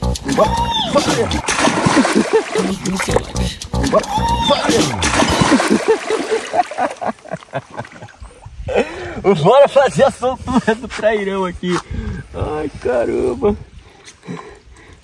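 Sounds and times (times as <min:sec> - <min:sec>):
repeated music track: 0:00.0 - 0:06.2
river water splashing: 0:00.2 - 0:08.4.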